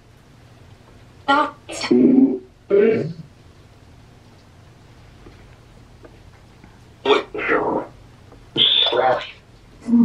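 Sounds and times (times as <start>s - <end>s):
garbled voice-like fragment: 1.7s - 3.3s, 7.0s - 10.0s.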